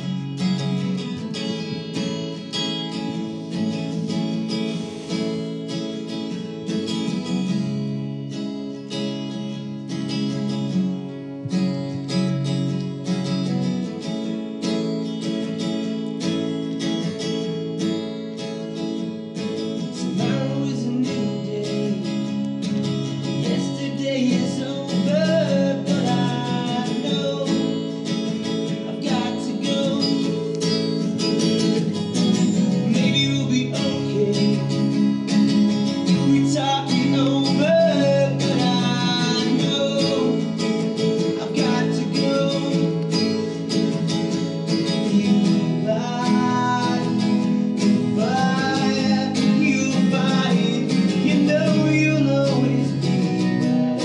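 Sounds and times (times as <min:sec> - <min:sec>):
acoustic guitars strumming chords: 0:00.0 - 0:54.0
man singing: 0:19.9 - 0:30.9, 0:32.2 - 0:35.2, 0:35.8 - 0:54.0.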